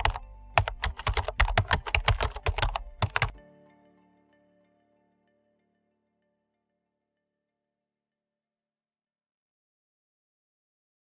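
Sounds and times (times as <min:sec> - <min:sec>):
computer keyboard typing: 0:00.0 - 0:03.4
soft background music: 0:00.0 - 0:07.4.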